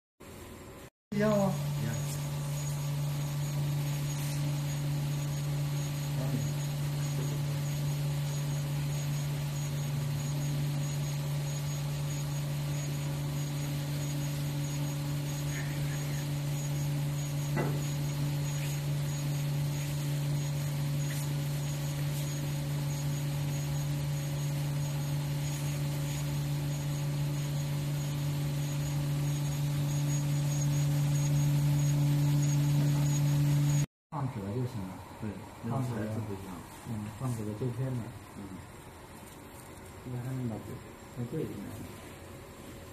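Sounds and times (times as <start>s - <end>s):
low machine hum: 0.2s - 42.9s
faint pulsing high tone: 1.1s - 33.9s.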